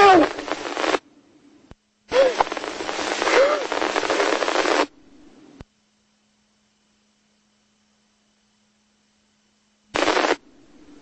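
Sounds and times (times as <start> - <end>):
radio static hiss: 0.0 - 6.2, 9.8 - 11.0.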